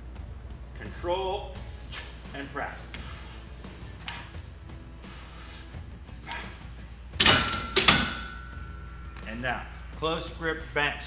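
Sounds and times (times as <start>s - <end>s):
barbell clanking into rack: 7.2s - 8.8s
thin metal ringing tone: 7.3s - 9.2s.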